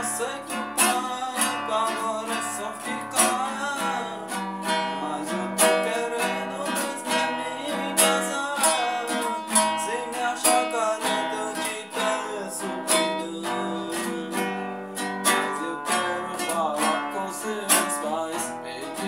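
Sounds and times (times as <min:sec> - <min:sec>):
acoustic guitar strummed chords: 0:00.0 - 0:19.0.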